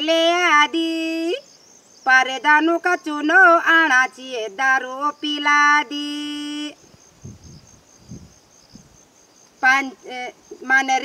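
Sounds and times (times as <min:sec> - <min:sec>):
insect chirring: 0:00.0 - 0:11.0.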